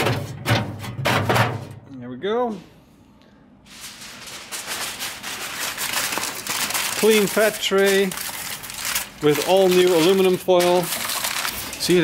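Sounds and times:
metal plate knocking on metal: 0:00.0 - 0:01.8.

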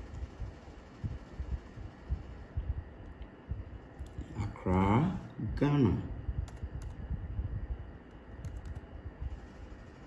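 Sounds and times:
typing on computer keyboard: 0:06.4 - 0:07.0, 0:08.4 - 0:08.9.

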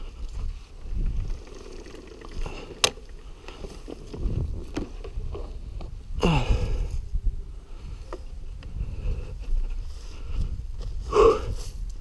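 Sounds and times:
dirt bike wheeled over dry ground: 0:00.0 - 0:12.0
wind rumbling on microphone: 0:00.0 - 0:12.0.

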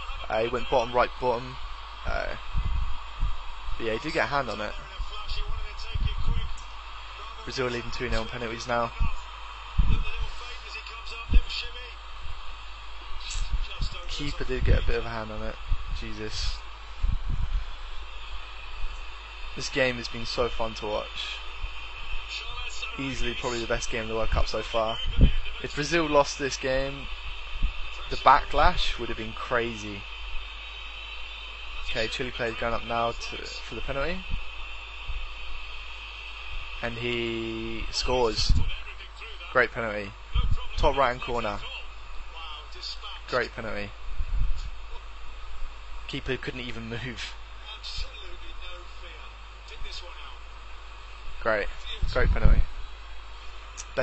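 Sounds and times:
man speaking: 0:00.0 - 0:02.4, 0:03.8 - 0:06.6, 0:07.2 - 0:09.2, 0:09.8 - 0:12.0, 0:13.2 - 0:16.6, 0:19.6 - 0:21.4, 0:22.3 - 0:27.1, 0:28.0 - 0:30.0, 0:31.8 - 0:34.4, 0:36.8 - 0:43.9, 0:46.1 - 0:50.4, 0:51.4 - 0:52.6, 0:53.8 - 0:54.0
low electrical hum: 0:00.0 - 0:54.0
steady hiss: 0:00.0 - 0:54.0.

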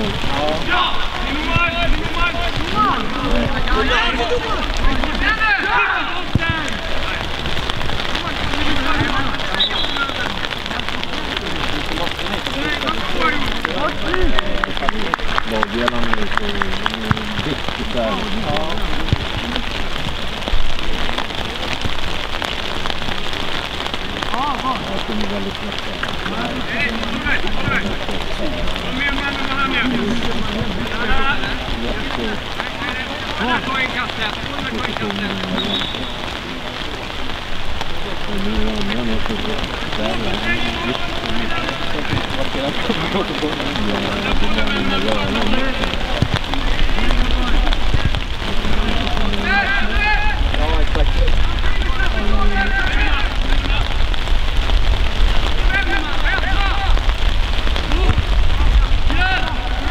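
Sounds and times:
distant players shouting: 0:00.2 - 0:11.2, 0:38.8 - 0:54.2, 0:55.6 - 0:57.2.

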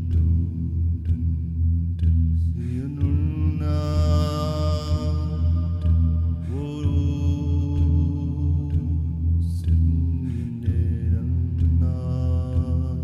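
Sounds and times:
steady low drone: 0:00.0 - 0:13.0.

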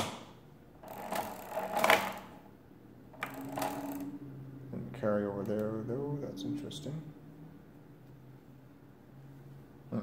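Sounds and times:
gearing clicking and rattling: 0:00.8 - 0:02.4, 0:03.2 - 0:04.1.

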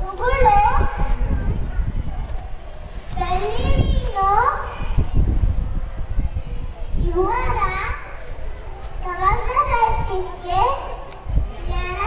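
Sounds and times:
child speaking into a microphone: 0:00.0 - 0:02.4, 0:03.1 - 0:12.0
low rumbling background noise: 0:00.0 - 0:12.0.

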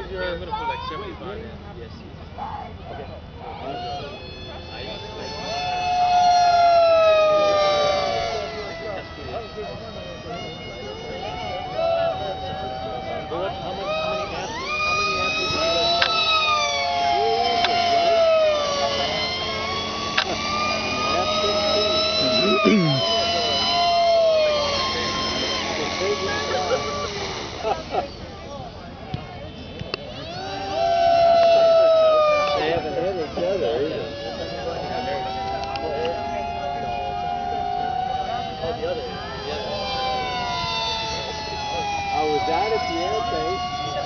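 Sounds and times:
model airplane motor whining: 0:02.4 - 0:44.0.

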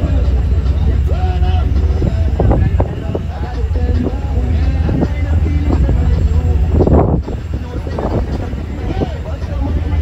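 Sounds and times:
ferry engine rumble: 0:00.0 - 0:10.0
people talking: 0:00.0 - 0:10.0
wind buffeting microphone: 0:00.0 - 0:10.0.

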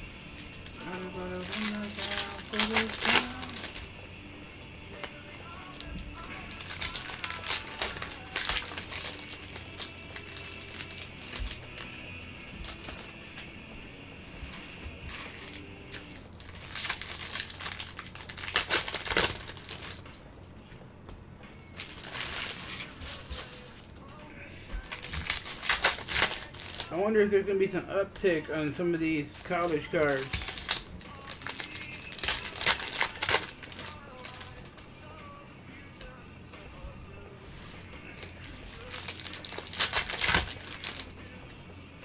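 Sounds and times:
foil wrappers crinkling and tearing: 0:00.3 - 0:03.9, 0:05.0 - 0:13.2, 0:14.5 - 0:20.1, 0:21.8 - 0:24.2, 0:24.8 - 0:27.1, 0:28.1 - 0:34.8, 0:38.0 - 0:41.2.

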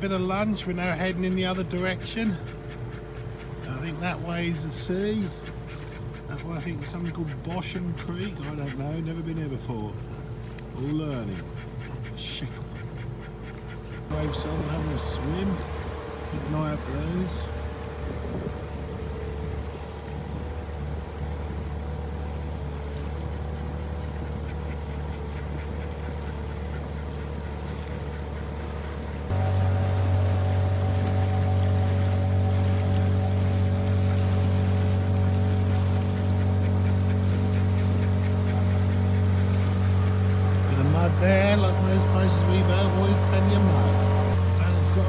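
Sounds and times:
outboard motor running: 0:00.0 - 0:45.0.

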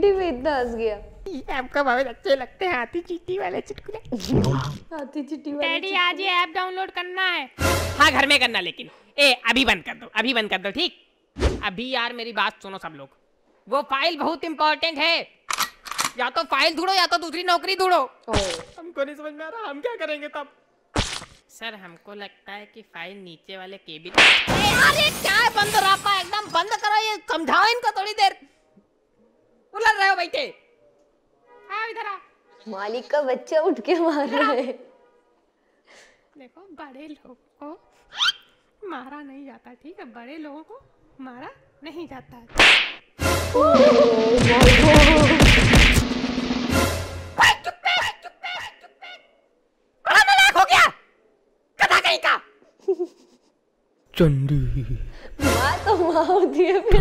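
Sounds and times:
cartoon slap sound effect: 0:18.3 - 0:18.8, 0:21.0 - 0:21.4, 0:24.1 - 0:24.9, 0:42.5 - 0:43.0, 0:43.7 - 0:46.2
cartoon dialogue: 0:24.0 - 0:27.8, 0:43.4 - 0:45.7, 0:47.3 - 0:49.3, 0:50.0 - 0:51.1.

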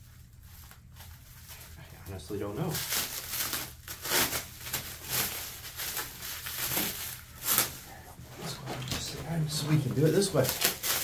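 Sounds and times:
plastic wrapping crinkling: 0:00.0 - 0:11.0.

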